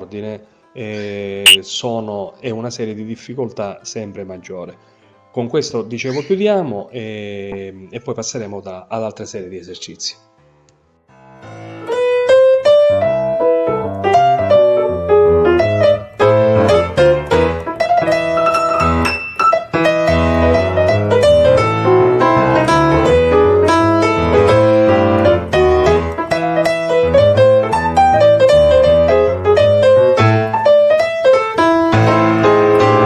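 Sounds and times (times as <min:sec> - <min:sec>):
piano music: 0:11.1 - 0:33.0.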